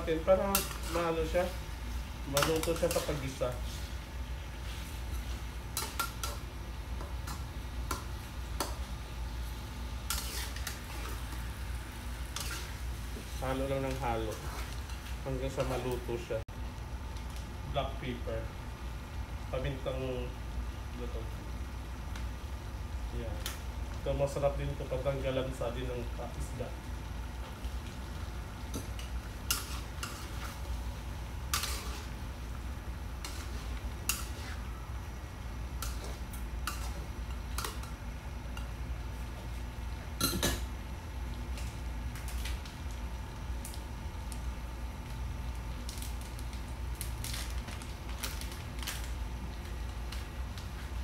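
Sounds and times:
steady low hum: 0.0 - 51.0
metal spatula scraping a wok: 0.5 - 1.2, 10.1 - 11.2, 12.3 - 12.8, 29.5 - 30.6, 31.5 - 32.2, 33.2 - 34.7.

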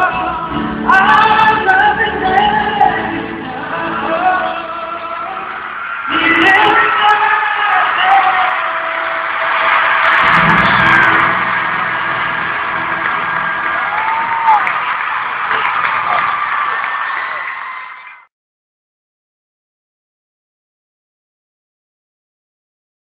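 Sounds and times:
live pop ballad: 0.0 - 14.8
crowd cheering and screaming: 4.0 - 18.3.

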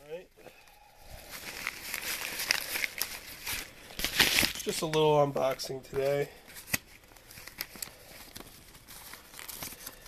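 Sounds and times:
packaging crinkling: 0.0 - 10.0.

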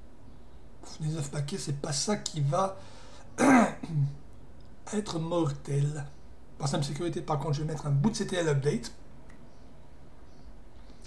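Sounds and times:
man clearing his throat: 3.4 - 4.2.

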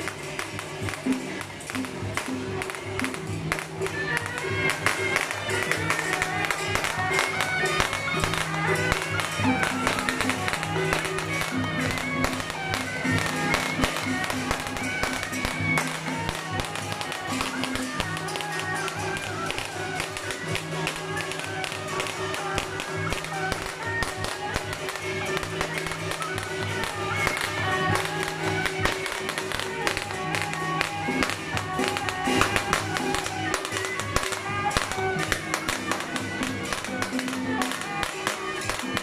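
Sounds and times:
drums gongs and cymbals beating: 0.0 - 39.0
shrill reed-horn melody: 2.2 - 39.0.

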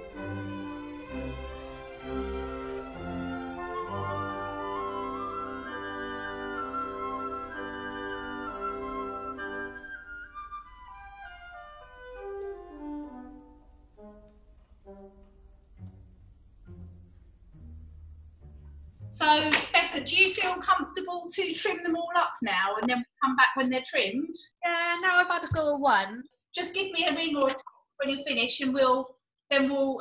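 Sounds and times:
instrumental background music: 0.0 - 21.0.

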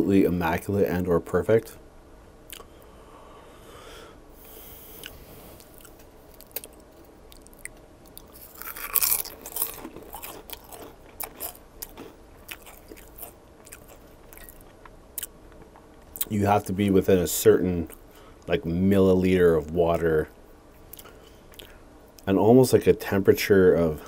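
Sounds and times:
potato chip crunching: 5.7 - 15.3.

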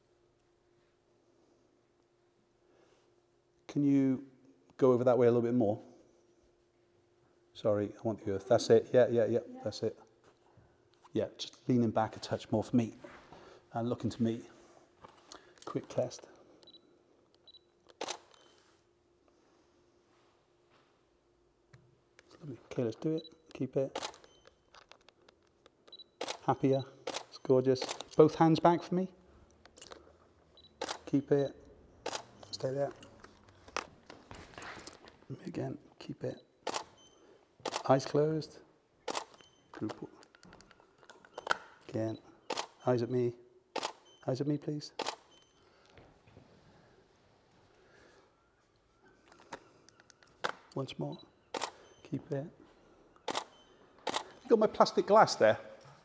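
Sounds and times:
camera autofocus beep: 16.6 - 16.9, 17.5 - 18.6, 24.0 - 24.7, 25.9 - 28.0, 30.6 - 31.0, 32.0 - 33.1, 36.4 - 37.8, 39.1 - 39.8, 41.3 - 42.9, 43.8 - 44.3, 45.0 - 45.6, 51.1 - 52.1, 53.2 - 54.4
camera shutter click: 17.9 - 18.4, 24.0 - 24.3, 26.2 - 28.1, 30.8 - 31.1, 32.0 - 32.4, 36.6 - 37.0, 37.6 - 37.9, 39.1 - 39.4, 42.5 - 42.8, 43.8 - 44.0, 45.0 - 45.4, 51.5 - 51.8, 53.2 - 54.4.

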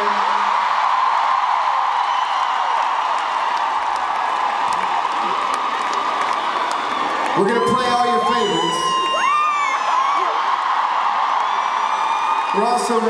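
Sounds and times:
crowd cheering and screaming: 0.0 - 13.0
scattered clapping: 2.4 - 7.5.

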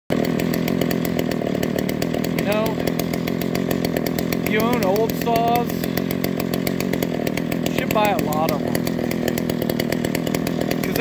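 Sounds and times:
chainsaw engine idling: 0.1 - 11.0.

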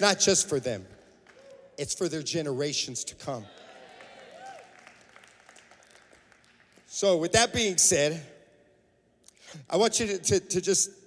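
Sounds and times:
murmur of large hall: 0.0 - 11.0
faint scattered clapping: 0.9 - 1.6, 3.6 - 6.9.

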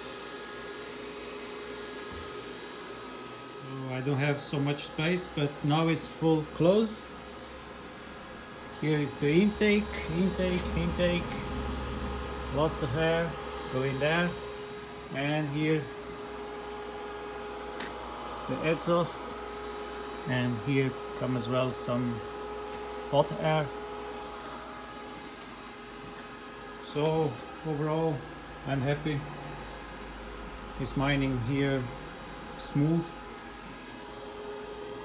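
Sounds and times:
cooling fans whooshing hum: 0.0 - 35.0.

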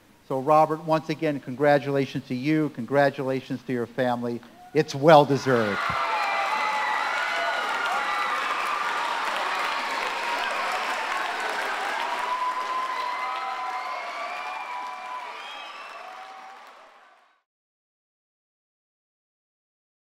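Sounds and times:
audience applauding: 5.7 - 17.4.

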